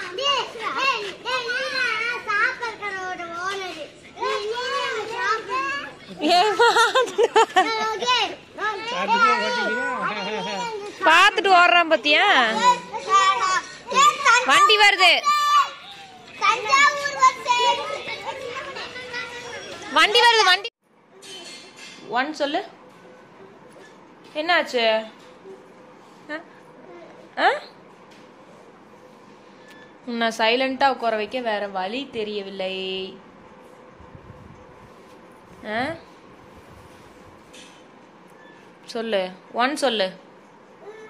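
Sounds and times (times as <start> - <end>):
children calling out: 0.0 - 3.1, 4.0 - 11.0, 12.5 - 20.0.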